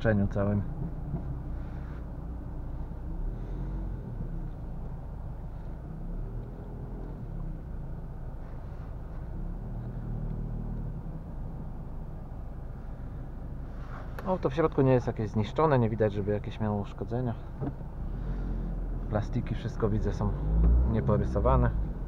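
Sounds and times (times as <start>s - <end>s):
engine and road rumble: 0.0s - 22.0s.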